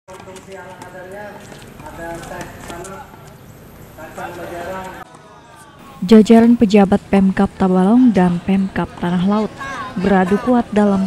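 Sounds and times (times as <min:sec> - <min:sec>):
people talking and calling out: 0:00.2 - 0:11.0.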